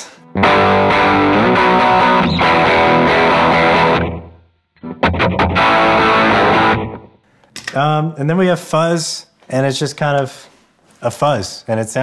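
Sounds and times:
distorted electric guitar chords: 0.0 - 7.2.

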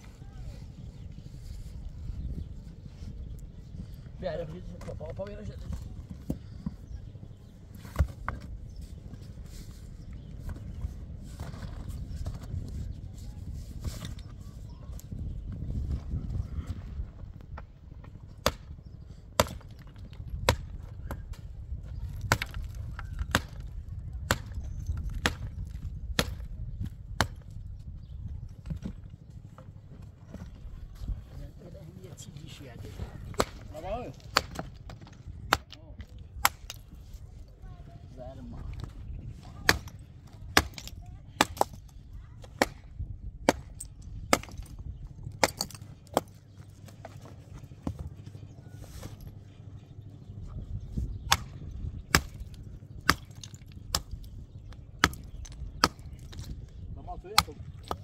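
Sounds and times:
steady low rumble: 14.4 - 58.0.

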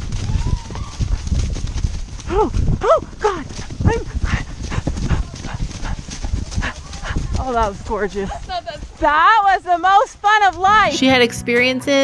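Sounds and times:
hooves crunching dry leaves: 0.0 - 11.4
horses galloping: 0.0 - 12.0.

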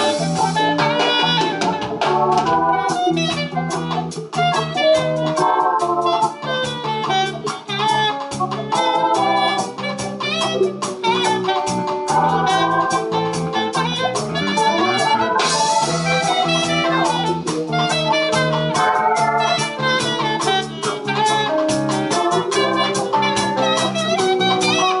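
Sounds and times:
live reggae band: 0.0 - 25.0.

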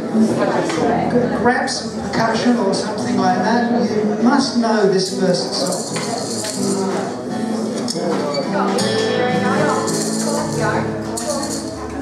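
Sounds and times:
acoustic guitar: 0.0 - 12.0
jingling hand percussion: 5.6 - 7.0, 9.6 - 11.9.

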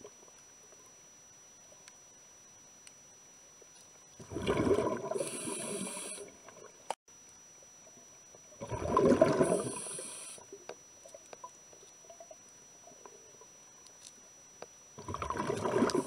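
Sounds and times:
diver breathing through regulator: 5.1 - 6.3, 9.2 - 10.4.

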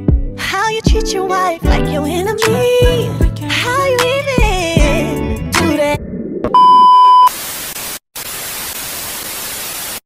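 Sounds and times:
song with singing: 0.4 - 6.0
loud steady beep: 6.6 - 7.3
television static hiss: 7.3 - 10.0.

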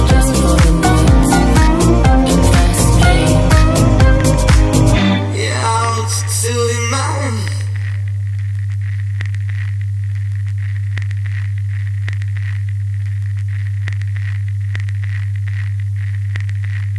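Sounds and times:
steady low hum: 0.0 - 16.9
faint crackles and clicks: 7.4 - 16.9.

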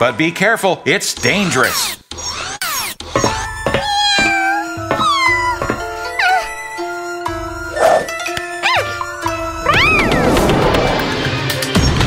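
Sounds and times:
cartoon soundtrack music: 1.1 - 12.0
cartoon cat meowing: 3.4 - 6.5, 9.7 - 10.2
quick rising sweep: 9.7 - 11.7.

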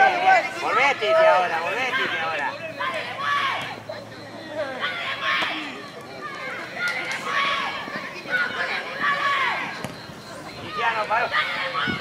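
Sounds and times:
distant voices shouting: 0.0 - 12.0.

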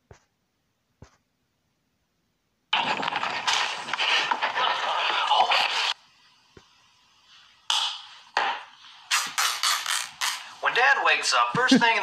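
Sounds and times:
tape ripping from roll: 9.1 - 10.5.

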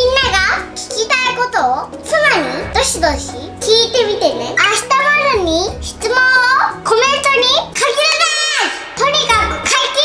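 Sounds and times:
background music with low notes: 0.0 - 10.0.

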